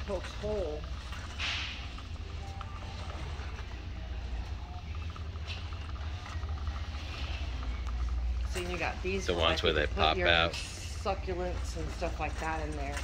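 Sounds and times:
faint rattles and clicks: 0.0s - 9.8s
shopping cart wheels rumbling: 0.0s - 13.0s.

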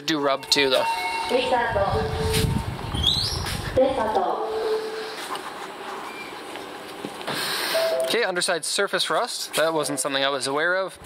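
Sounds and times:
car park background noise: 0.0s - 11.0s
faint short beep: 7.7s - 8.2s.

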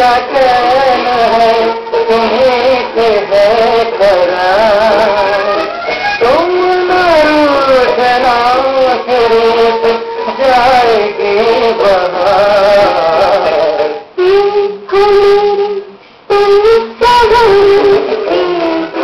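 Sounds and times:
person singing over music: 0.0s - 19.0s.

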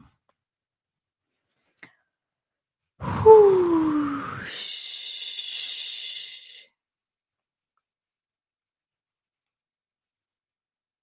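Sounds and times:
woman exhaling with a hiss: 3.0s - 6.7s.

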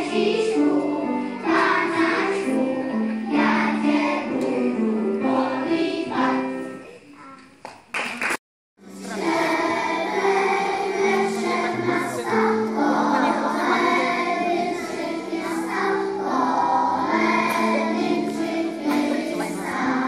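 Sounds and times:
children singing as a choir: 0.0s - 6.8s, 8.9s - 20.0s.

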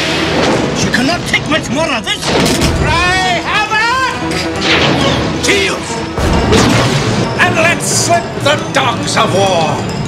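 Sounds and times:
film trailer music: 0.0s - 10.0s
sharp crash: 4.6s - 5.3s.

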